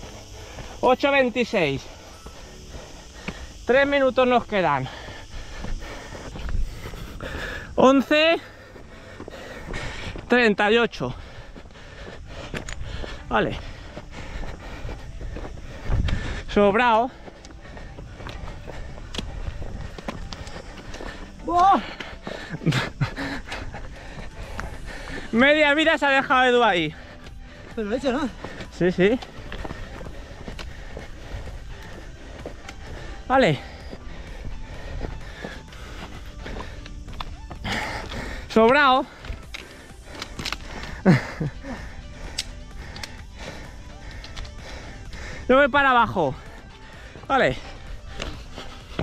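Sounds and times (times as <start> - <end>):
footsteps on dirt trail: 0.0 - 49.0
person exclaiming: 21.4 - 21.9
trekking pole taps: 38.0 - 41.0, 42.3 - 43.3.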